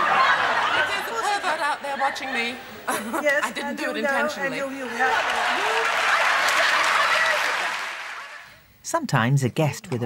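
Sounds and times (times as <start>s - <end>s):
audience applauding: 4.8s - 8.5s.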